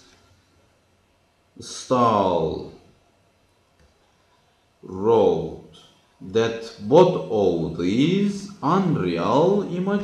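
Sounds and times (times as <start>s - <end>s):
man's voice: 1.6s - 2.8s, 4.8s - 10.0s.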